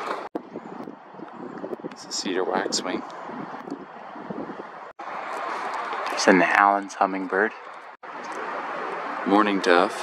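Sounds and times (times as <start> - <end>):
wind on microphone: 0.0 - 6.3.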